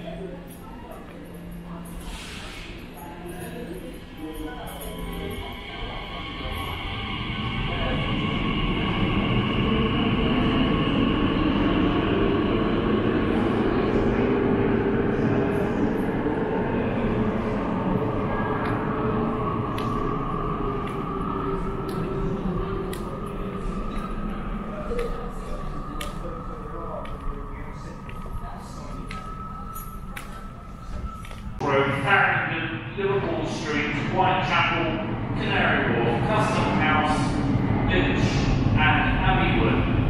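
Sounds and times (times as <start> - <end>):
train rumble: 0.0 - 40.0.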